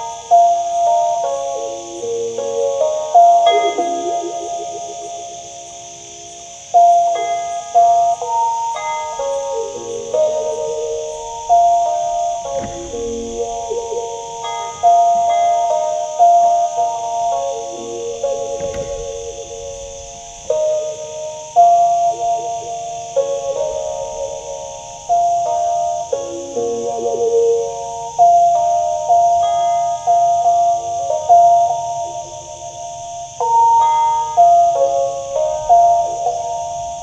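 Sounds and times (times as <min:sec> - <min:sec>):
stick zither slow melody: 0:00.0 - 0:37.0.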